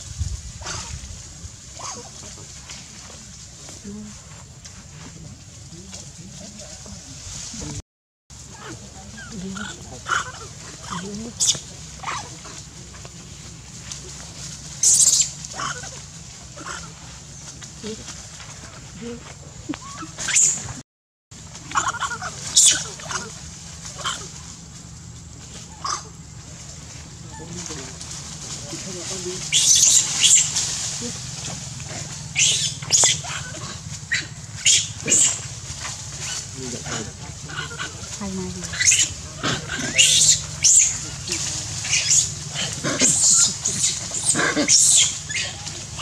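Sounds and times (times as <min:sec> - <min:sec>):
low steady background rumble: 0:00.0 - 0:46.0
baby monkey high-pitched cries: 0:08.6 - 0:12.3, 0:14.8 - 0:16.0, 0:21.7 - 0:23.3, 0:29.5 - 0:30.6, 0:32.4 - 0:35.4, 0:38.7 - 0:46.0.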